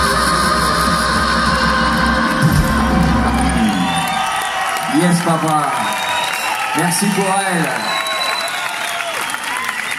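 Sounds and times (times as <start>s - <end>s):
live band playing: 0.0s - 5.1s
crowd cheering: 1.3s - 9.9s.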